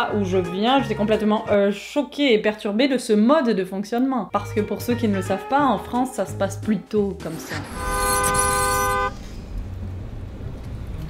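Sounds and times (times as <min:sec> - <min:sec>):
low rumble of street noise: 0:07.3 - 0:11.0
car horn blast: 0:07.6 - 0:09.3.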